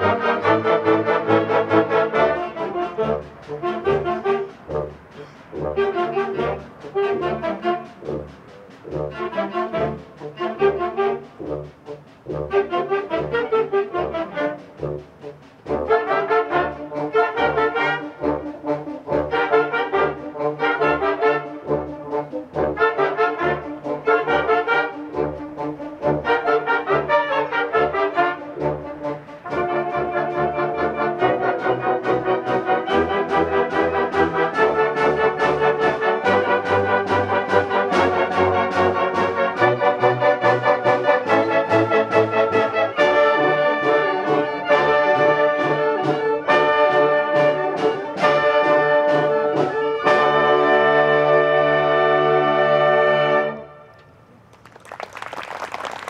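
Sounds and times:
concert band playing: 0:00.0 - 0:52.4.

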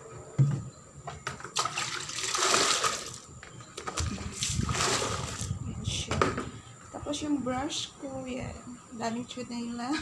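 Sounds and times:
water pouring into a plastic bucket: 0:01.6 - 0:03.3, 0:04.0 - 0:05.5.

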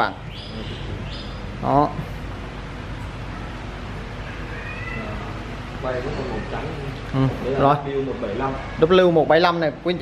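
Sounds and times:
room noise: 0:00.0 - 0:10.0
faint cat-like meows: 0:04.2 - 0:07.0, 0:08.2 - 0:09.2.

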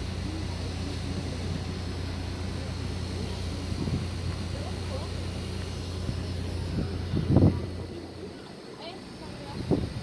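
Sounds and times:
boat engine drone: 0:00.0 - 0:10.0
faint voices: 0:00.0 - 0:10.0.

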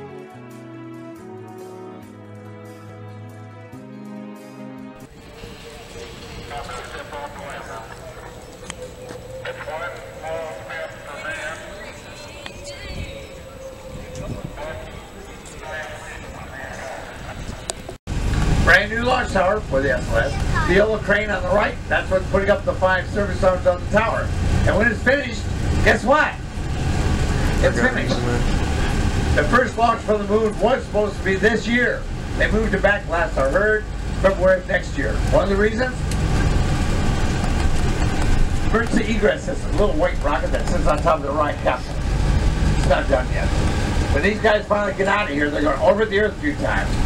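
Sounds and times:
low microphone rumble: 0:05.0 - 0:47.0
indistinct chatter of voices: 0:05.1 - 0:17.9, 0:27.5 - 0:29.0
man talking: 0:06.4 - 0:08.3, 0:09.4 - 0:11.8, 0:27.5 - 0:28.6, 0:44.2 - 0:47.0.

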